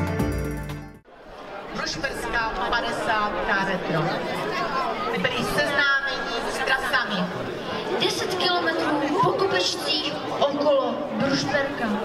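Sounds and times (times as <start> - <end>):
crowd chattering: 1.0 - 12.0.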